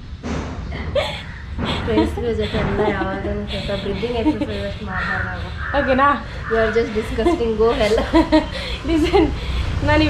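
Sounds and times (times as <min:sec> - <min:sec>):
women chatting: 0:00.8 - 0:10.0
women laughing: 0:00.8 - 0:10.0
harsh bird call: 0:05.0 - 0:07.0.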